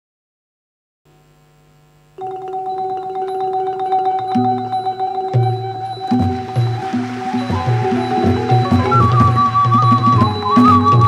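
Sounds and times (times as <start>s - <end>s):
faint electrical hum: 1.1s - 5.9s.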